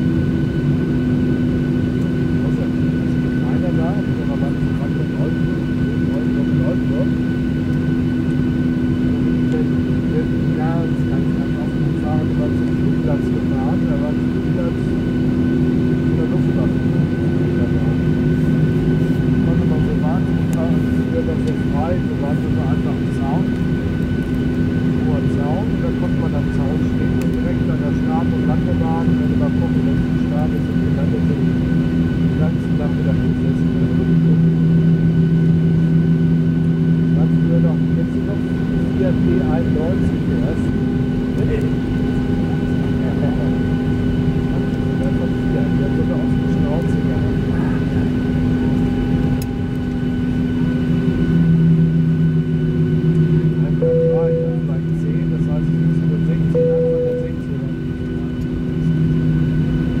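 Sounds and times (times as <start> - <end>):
constant whining tones: 0.0 - 60.0
jet engines humming: 0.0 - 60.0
deep tone: 53.5 - 59.1.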